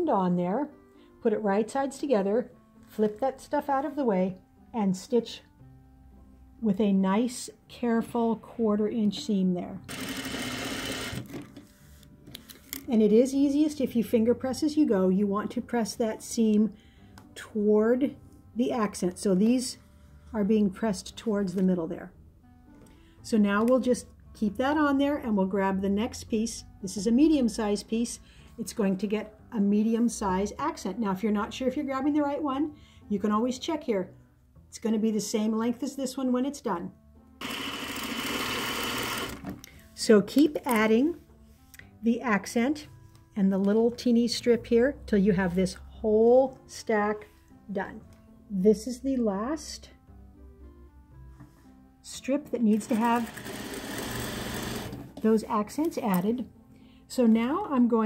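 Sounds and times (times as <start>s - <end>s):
sewing machine stitching: 9.9s - 11.6s, 37.4s - 39.6s, 52.7s - 55.2s.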